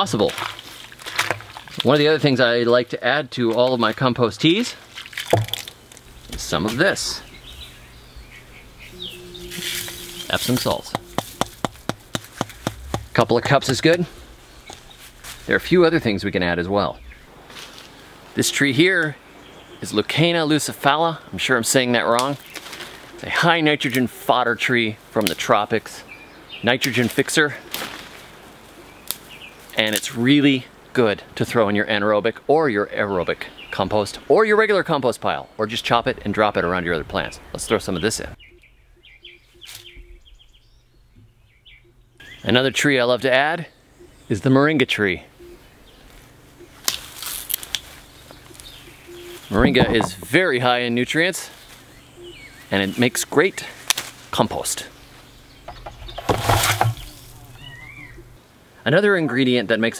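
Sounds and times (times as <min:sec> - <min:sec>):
branches splashing into water: 0:04.9 - 0:06.4, 0:56.2 - 0:57.5
faint bird chirps: 0:06.9 - 0:11.6, 0:38.4 - 0:42.9, 0:43.6 - 0:47.0, 0:47.7 - 0:50.2, 0:51.5 - 0:53.6, 0:56.9 - 0:58.4.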